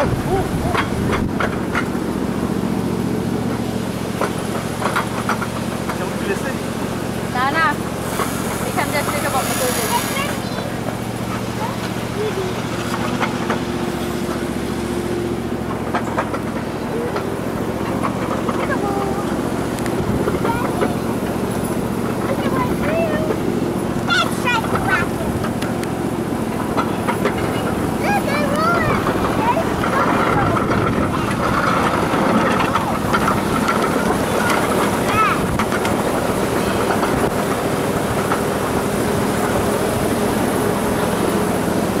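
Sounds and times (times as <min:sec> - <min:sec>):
small train engine drone: 0:00.0 - 0:42.0
wheels clicking on rails: 0:00.0 - 0:42.0.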